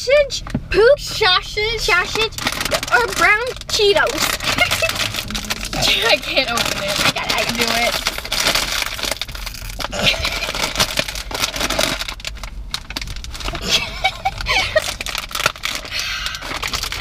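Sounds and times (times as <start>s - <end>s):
plastic snack bag crackling: 1.9s - 17.0s.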